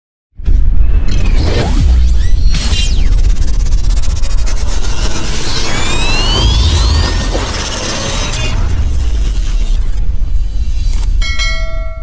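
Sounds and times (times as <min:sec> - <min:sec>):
deep loud rumble: 0:01.8 - 0:11.8
bell-like chime: 0:11.2 - 0:12.0.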